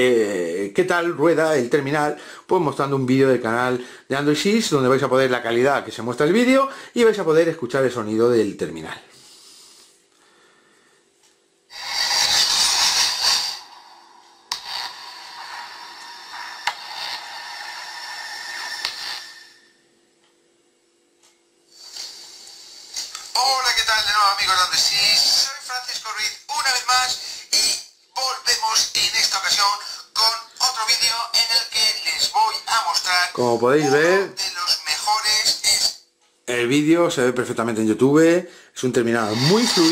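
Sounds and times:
loud noisy burst from phone speaker: 11.7 - 19.8, 39.2 - 39.9
quieter noise from phone speaker: 14.4 - 19.6, 21.8 - 37.7, 38.9 - 39.9
speech from phone speaker: 23.4 - 36.0, 39.2 - 39.9.

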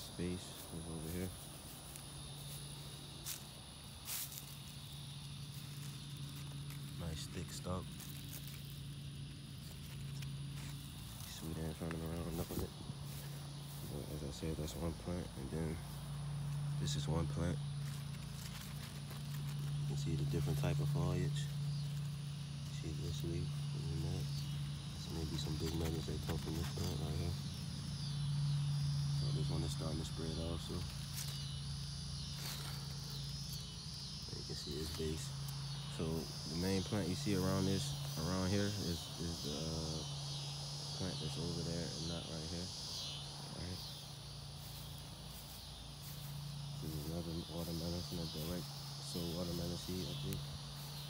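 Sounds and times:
insects trilling: 0.0 - 51.0
low steady hum: 0.0 - 51.0.

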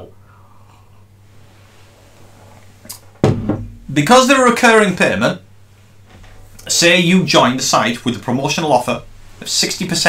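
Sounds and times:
cup knock on desk: 3.2 - 3.8.

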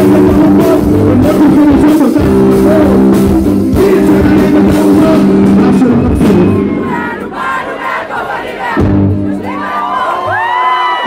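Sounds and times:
band holding low note: 0.0 - 7.9
audience screaming and cheering: 5.2 - 11.0.

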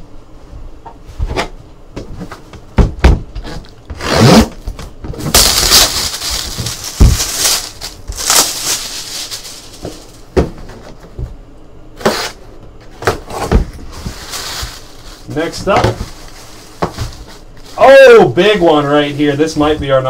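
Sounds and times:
boxes knocking when set down: 1.3 - 3.6, 6.1 - 8.2, 9.8 - 11.4, 12.9 - 17.4.

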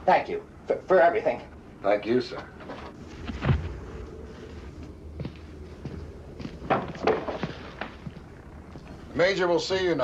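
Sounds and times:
footsteps on wooden floor: 4.4 - 9.0.

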